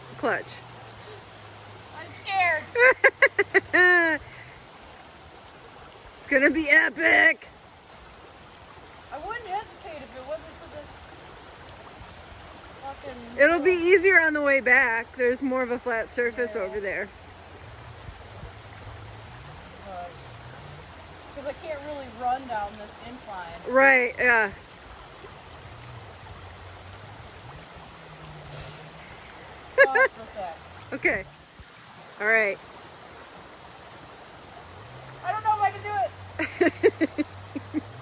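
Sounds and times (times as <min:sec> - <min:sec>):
creek water rushing: 0:00.0 - 0:38.0.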